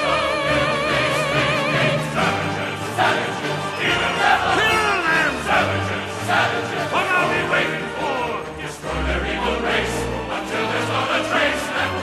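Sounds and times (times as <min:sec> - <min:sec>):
dramatic orchestral music: 0:00.0 - 0:12.0.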